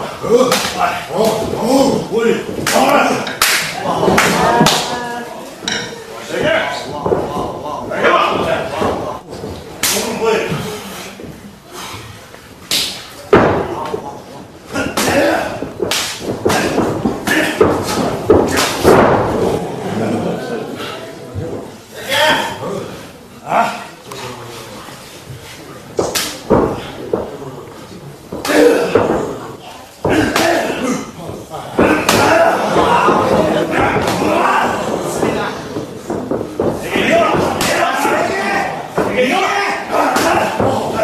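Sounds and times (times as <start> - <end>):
people shouting: 0.0 - 9.1, 14.8 - 15.8, 31.8 - 35.8, 36.6 - 41.0
wrestling impact smacks: 14.8 - 19.7, 30.0 - 41.0
voices shouting: 31.8 - 35.6, 36.7 - 41.0.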